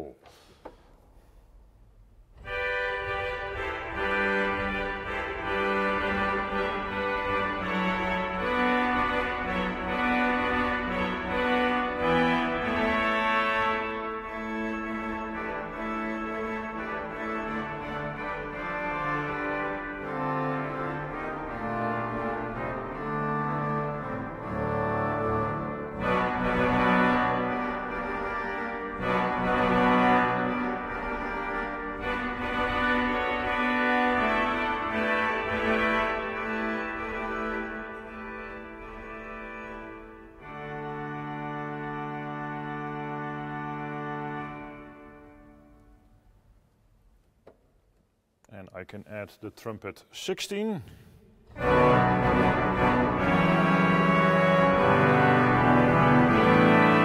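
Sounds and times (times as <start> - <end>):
pipe organ chords: 2.1 - 46.2, 50.8 - 57.0.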